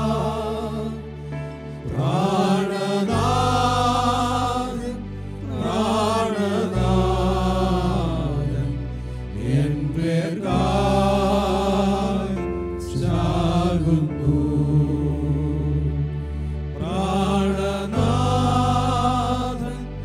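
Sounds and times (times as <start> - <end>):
keyboard accompaniment: 0.0 - 20.0
men singing a hymn: 0.0 - 20.0.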